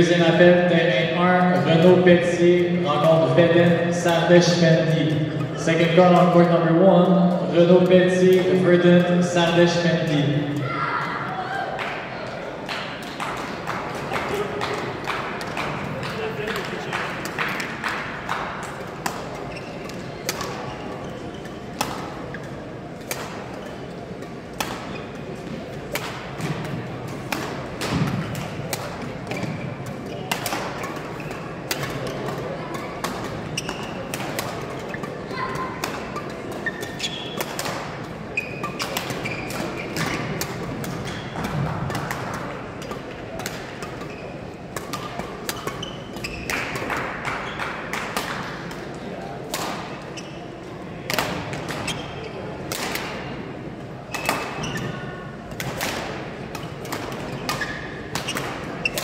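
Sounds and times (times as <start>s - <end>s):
murmur of voices: 0.0s - 59.0s
rackets hitting shuttlecocks: 12.7s - 50.0s, 51.0s - 52.0s, 52.6s - 59.0s
shoe squeaks on court floor: 19.4s - 21.7s, 29.3s - 30.4s, 33.5s - 34.1s, 36.6s - 37.4s, 38.4s - 40.3s, 44.0s - 44.4s, 45.6s - 46.5s, 50.1s - 50.5s, 51.8s - 52.4s, 54.1s - 55.1s.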